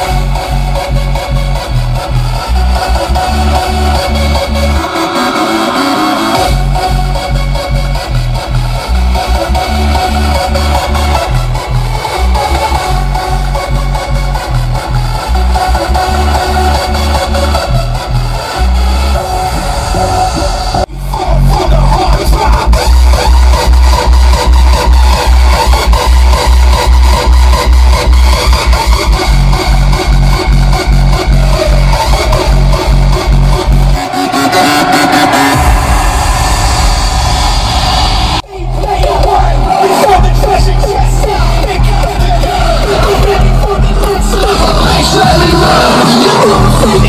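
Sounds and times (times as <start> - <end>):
electronic dance music heavy bass: 0.0 - 47.0.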